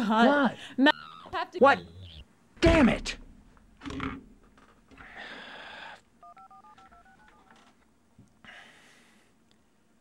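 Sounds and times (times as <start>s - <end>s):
phone keypad touch-tone beeps: 6.2s - 7.6s.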